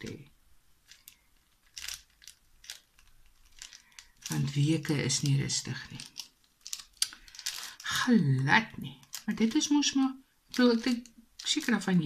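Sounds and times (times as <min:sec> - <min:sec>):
person speaking: 0:00.0 - 0:01.0, 0:03.5 - 0:12.0
small plastic clicks and rustling: 0:00.8 - 0:07.9, 0:09.0 - 0:09.7, 0:10.5 - 0:12.0.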